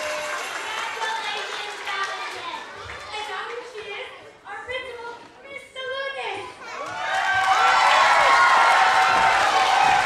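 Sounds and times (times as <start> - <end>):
children cheering: 0.0 - 1.1, 6.7 - 10.0.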